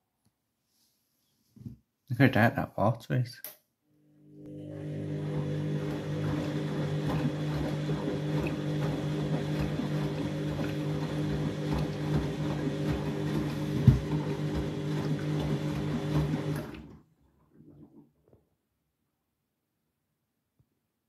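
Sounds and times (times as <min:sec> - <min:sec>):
washing machine motor hum: 0:04.2 - 0:18.0
water sloshing: 0:05.2 - 0:18.1.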